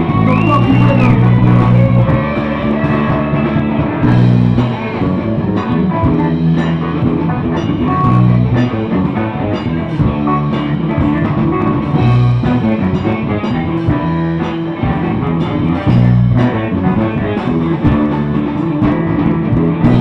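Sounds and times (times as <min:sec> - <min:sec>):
bass notes: 0:00.0 - 0:20.0
drum kit: 0:00.0 - 0:20.0
electric guitar: 0:00.0 - 0:20.0.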